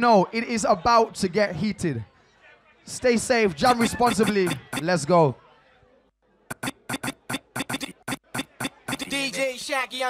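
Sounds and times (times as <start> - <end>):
electronic drum hits: 6.5 - 9.1.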